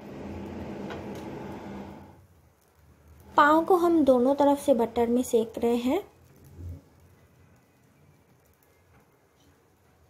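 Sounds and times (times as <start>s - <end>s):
butter sizzling on a griddle: 0.0s - 10.0s.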